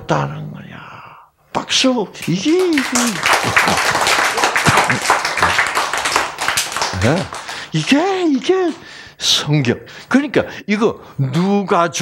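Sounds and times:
audience applauding: 2.2s - 8.9s.

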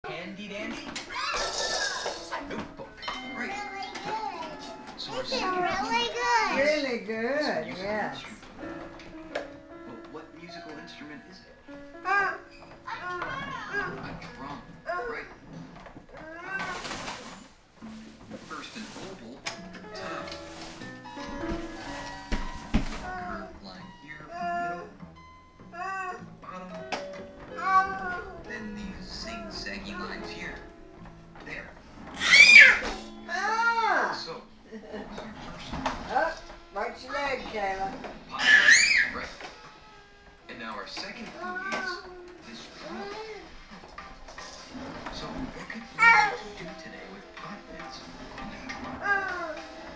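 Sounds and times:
child squealing: 1.1s - 2.1s, 32.2s - 34.1s, 38.4s - 39.2s
young children babbling: 12.0s - 14.0s, 27.6s - 28.4s, 46.0s - 46.4s.

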